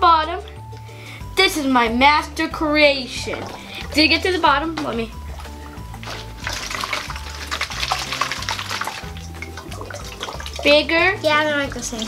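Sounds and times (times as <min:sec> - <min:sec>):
background music with bass: 0:00.0 - 0:12.0
water swirling and gurgling: 0:01.9 - 0:12.0.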